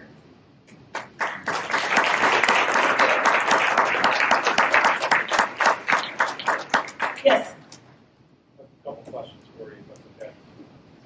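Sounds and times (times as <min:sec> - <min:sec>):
audience applauding: 0:00.9 - 0:07.5.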